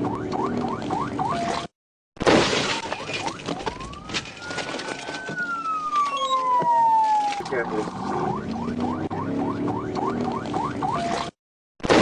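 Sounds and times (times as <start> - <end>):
police siren yelp and wail: 0.0 - 1.7, 2.7 - 11.4
vehicle crash with shattering debris: 2.2 - 6.1.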